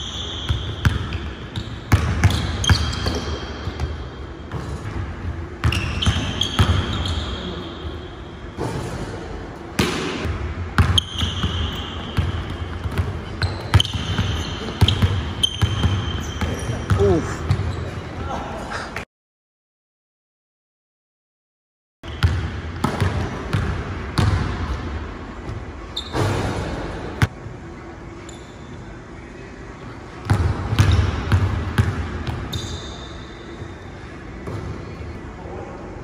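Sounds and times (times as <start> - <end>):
sneaker squeaks: 0.0 - 9.1, 10.8 - 18.2, 25.9 - 27.2, 28.2 - 28.9, 30.3 - 35.2.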